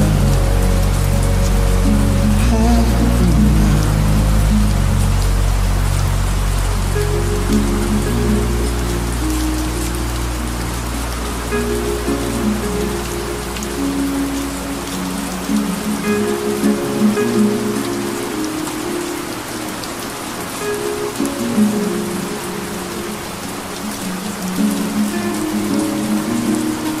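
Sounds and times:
low hum: 0.0s - 16.2s
rain-like hiss: 0.0s - 27.0s
soft music with low notes: 0.0s - 27.0s.

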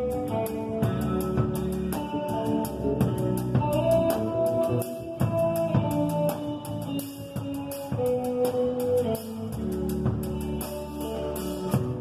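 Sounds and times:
bass guitar: 0.0s - 12.0s
drum kit beat: 0.0s - 12.0s
electric guitar: 0.0s - 12.0s.

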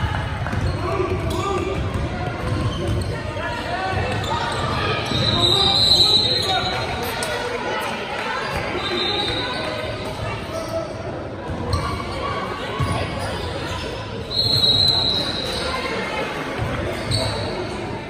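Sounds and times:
many voices echoing: 0.0s - 18.0s
basketballs bouncing on hardwood: 0.4s - 3.1s.

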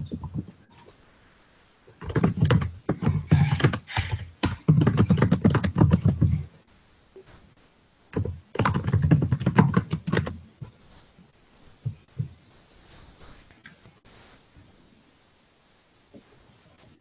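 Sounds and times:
fast typing on keyboard: 0.0s - 0.6s, 1.9s - 6.5s, 8.1s - 10.4s.

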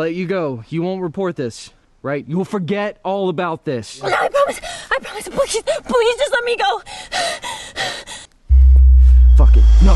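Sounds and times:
woman gasping frightened: 4.5s - 5.0s, 6.8s - 8.3s
deep bass drone: 8.5s - 9.9s.

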